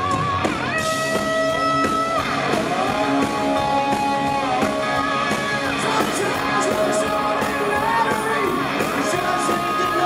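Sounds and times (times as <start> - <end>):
drums and bass: 0.0 - 10.0
rock band playing: 0.0 - 10.0.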